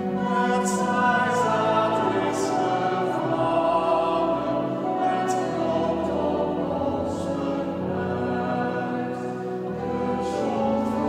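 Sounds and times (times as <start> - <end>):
mixed choir singing a hymn: 0.0 - 11.0.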